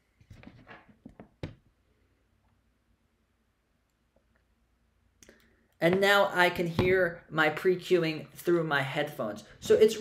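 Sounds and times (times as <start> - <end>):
soft knocks and rustles of handling: 0.2 - 1.6.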